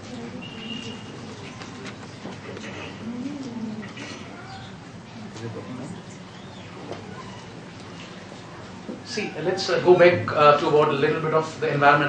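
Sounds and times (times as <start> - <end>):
low cooing call: 0.0 - 1.4, 2.6 - 6.0.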